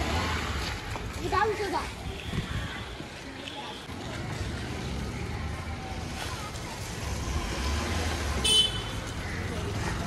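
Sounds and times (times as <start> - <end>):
car horn toot: 8.4 - 8.9.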